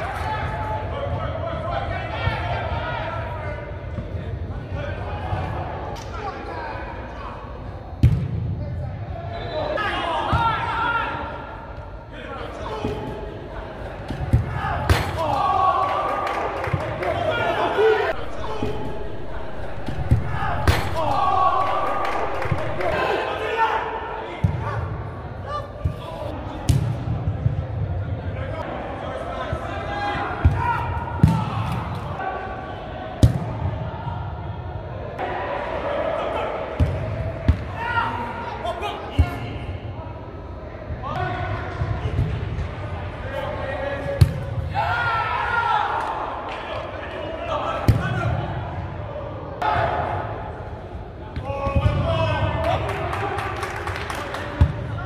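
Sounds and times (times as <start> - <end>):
players shouting in hall: 0.0 - 3.7, 9.3 - 13.2, 14.4 - 26.5, 28.4 - 39.9, 42.9 - 55.0.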